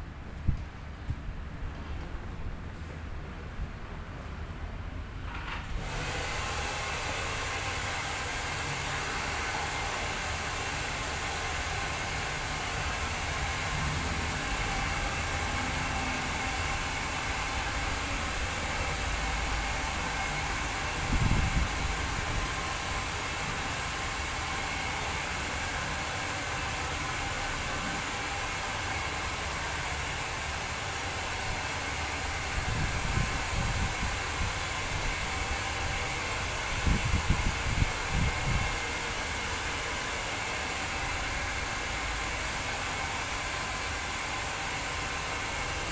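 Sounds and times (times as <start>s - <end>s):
hair dryer blowing: 5.6s - 45.9s.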